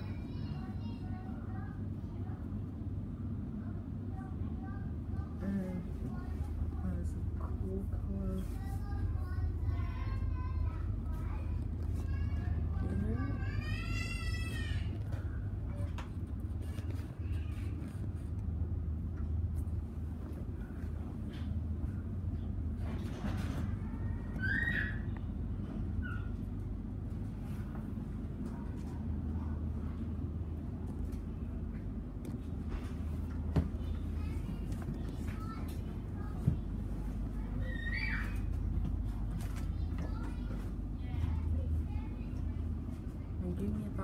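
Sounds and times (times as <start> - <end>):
faint passenger chatter: 0.0 - 44.0
train carriage rumble and hum: 0.0 - 44.0.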